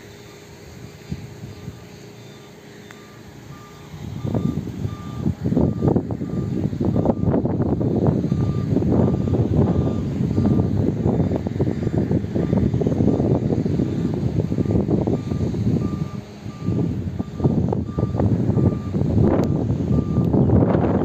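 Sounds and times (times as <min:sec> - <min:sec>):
wind buffeting microphone: 0:00.5 - 0:02.1, 0:03.3 - 0:21.0
faint high beeps: 0:01.5 - 0:07.3, 0:08.3 - 0:10.7.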